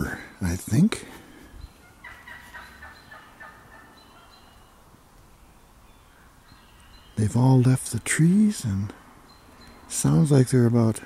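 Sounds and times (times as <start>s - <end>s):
wild turkey gobbling: 1.8s - 4.9s.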